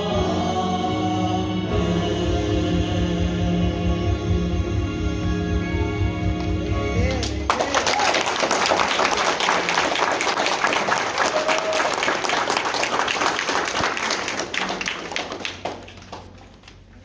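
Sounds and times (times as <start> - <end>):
audience applauding: 7.1 - 17.0.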